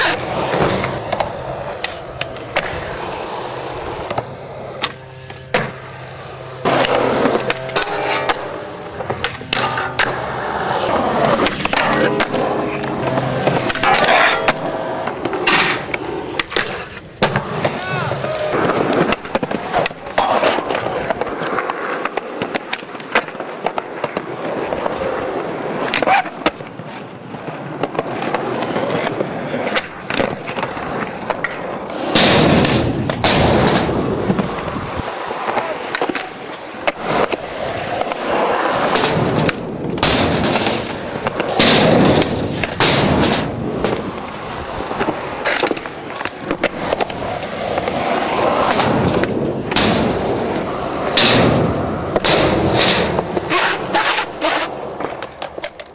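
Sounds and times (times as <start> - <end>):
skateboard clacks and smacks: 0.0 - 6.0, 6.6 - 55.9
skateboard wheels rolling on concrete: 0.0 - 55.9.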